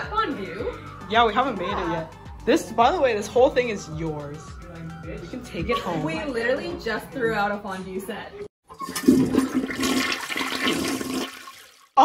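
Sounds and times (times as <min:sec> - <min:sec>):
toilet flushing: 0:08.6 - 0:12.0.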